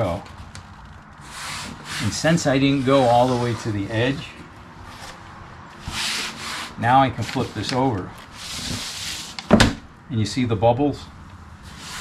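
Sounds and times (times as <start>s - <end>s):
hands rubbing on vinyl: 1.2s - 4.4s.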